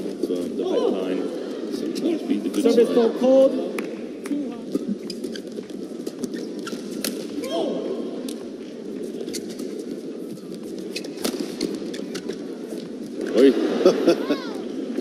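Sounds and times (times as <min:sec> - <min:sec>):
arena crowd murmur: 0:00.6 - 0:04.9.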